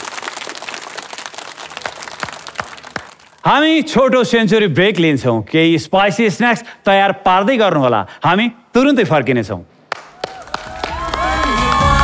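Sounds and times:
crowd applauding: 0.0s - 3.4s, 9.9s - 12.0s.

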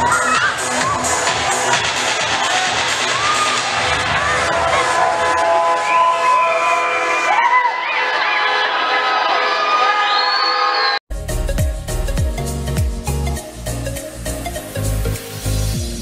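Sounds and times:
loud dance music: 0.0s - 10.4s, 11.1s - 16.0s
crowd cheering and shouting: 0.0s - 11.0s.

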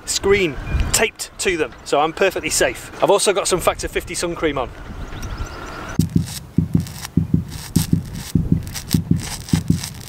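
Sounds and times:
short low thumps: 6.0s - 10.0s.

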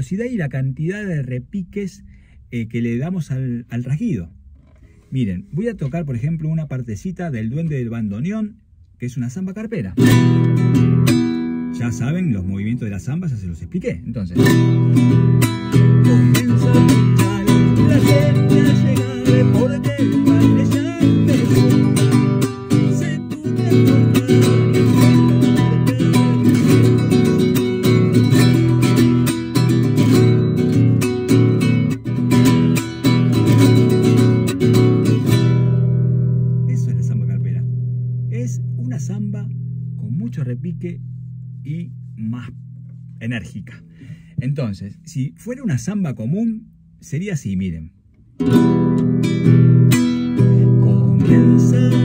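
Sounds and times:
classical guitar strummed fast: 10.0s - 12.1s, 14.4s - 36.9s, 48.4s - 52.0s.

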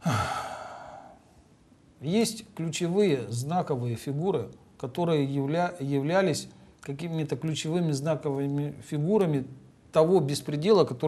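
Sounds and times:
man sighing: 0.0s - 1.2s.

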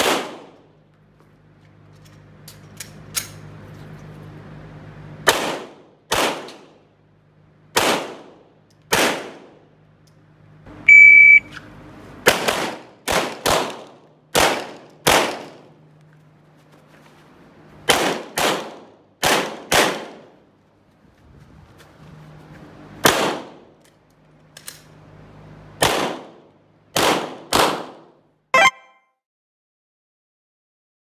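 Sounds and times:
pistol shots: 0.0s - 0.6s, 5.2s - 6.8s, 7.8s - 9.6s, 12.2s - 15.6s, 17.9s - 20.3s, 23.0s - 23.6s, 25.8s - 26.4s, 27.0s - 28.1s
shot timer beep: 10.9s - 11.5s, 28.6s - 29.0s.

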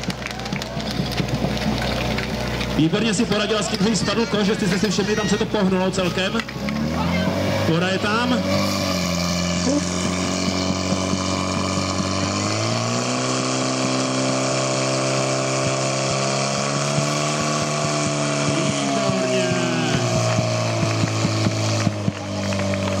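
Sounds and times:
pump engine running hard: 0.0s - 23.0s.

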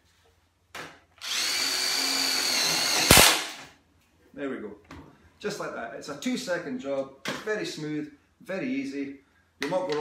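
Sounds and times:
impact driver whining: 1.2s - 3.6s.

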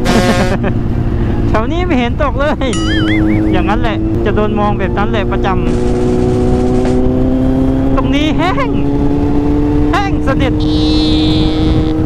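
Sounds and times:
heavy wind: 0.0s - 12.0s
motorcycle engine cruising: 0.0s - 12.0s
road rumble: 0.0s - 12.0s.

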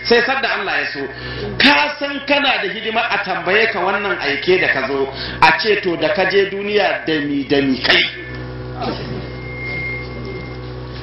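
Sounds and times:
low electrical hum: 0.0s - 11.0s
thin high tone: 7.5s - 10.6s.

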